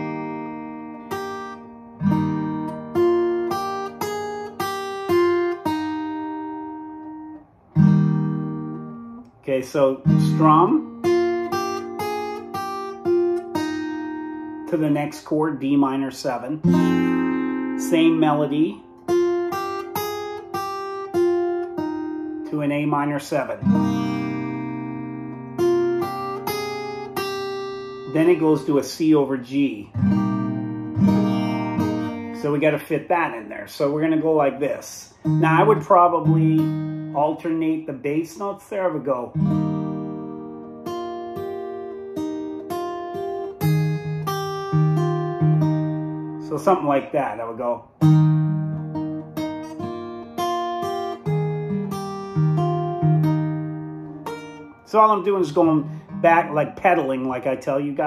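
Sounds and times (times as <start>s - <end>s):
fingerstyle acoustic guitar: 0.0s - 58.0s.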